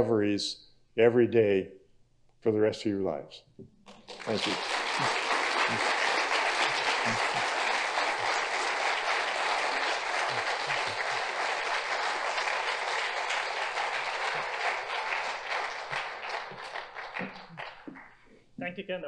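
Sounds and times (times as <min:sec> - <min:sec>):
audience applauding: 0:03.9 - 0:18.2.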